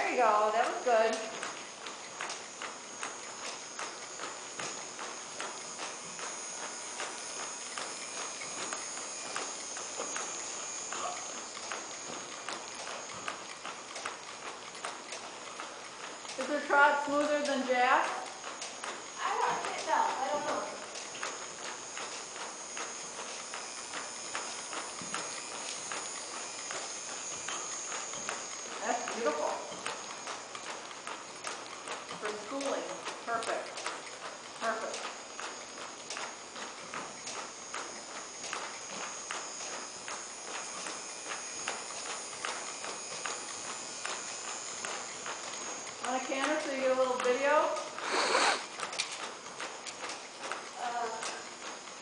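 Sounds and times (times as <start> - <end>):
horse hooves on dirt: 0.0 - 52.0.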